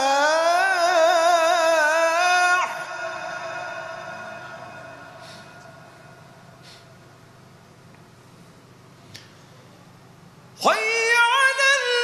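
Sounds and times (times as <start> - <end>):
reverberating call to prayer note: 0.0 - 6.8.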